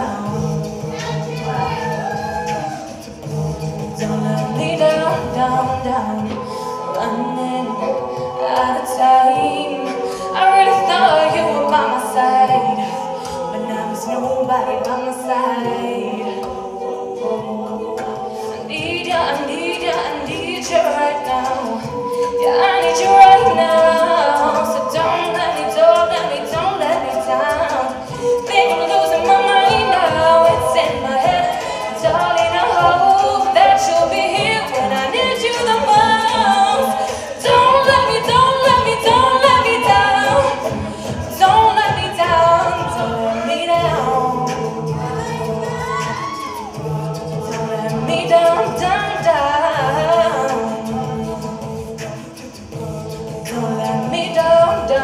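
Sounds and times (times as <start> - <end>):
vocal percussion beat: 0.0 - 55.0
women singing a cappella: 0.0 - 55.0.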